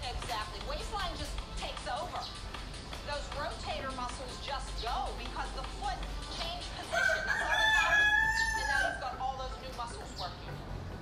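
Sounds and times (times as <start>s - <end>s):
rooster crowing: 6.9s - 9.0s.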